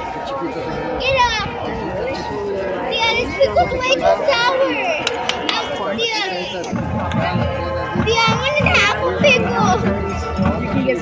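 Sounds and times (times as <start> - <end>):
children and spectators chattering: 0.0 - 11.0
marching band music: 2.8 - 11.0.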